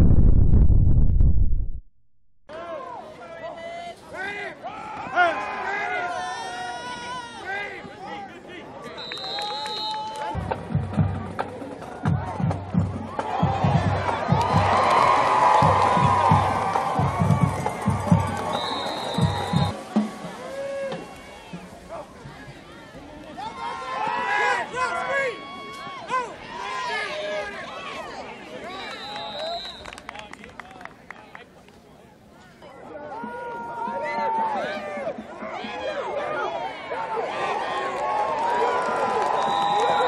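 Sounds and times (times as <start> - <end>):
bass drum beats: 0.0 - 1.8, 15.5 - 19.7
crowd cheering: 4.6 - 10.6, 11.4 - 31.5, 32.8 - 40.0
referee's whistle blast: 9.0 - 10.1, 18.5 - 19.7, 28.9 - 29.9.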